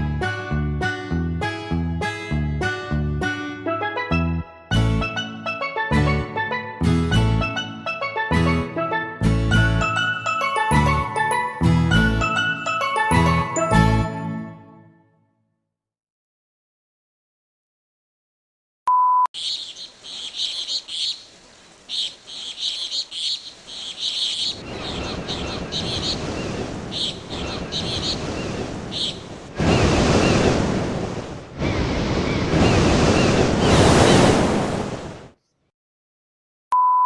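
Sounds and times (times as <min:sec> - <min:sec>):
small birds chirping: 0:19.4 - 0:30.6
ocean surf: 0:24.5 - 0:35.4.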